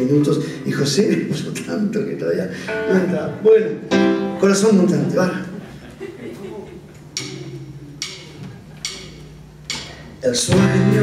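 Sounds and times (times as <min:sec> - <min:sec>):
sharp percussive count-in clicks: 0:07.2 - 0:09.9.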